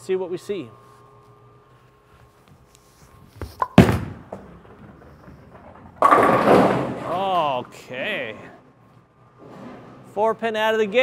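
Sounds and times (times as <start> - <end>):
bowling ball landing thud: 3.4 - 7.4
bowling ball rolling: 3.4 - 7.8.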